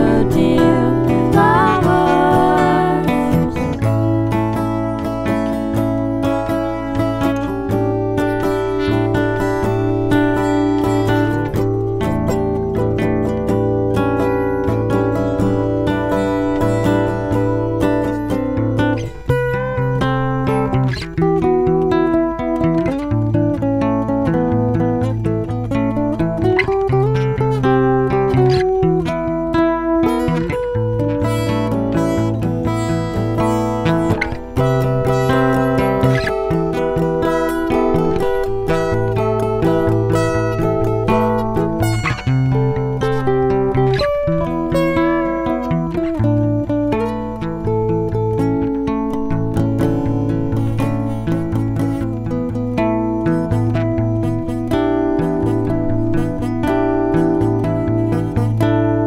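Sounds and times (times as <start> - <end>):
acoustic guitars playing: 0.0 - 59.0
low bass line: 0.0 - 59.0.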